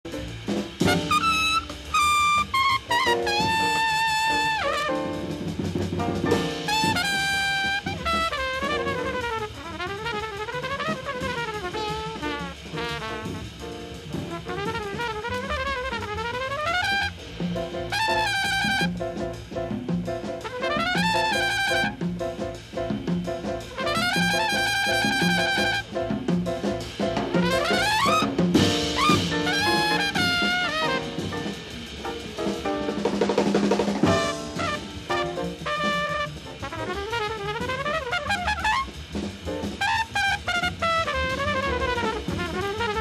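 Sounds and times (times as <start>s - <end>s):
drums: 0.0s - 43.0s
jazz trumpet lead: 0.1s - 43.0s.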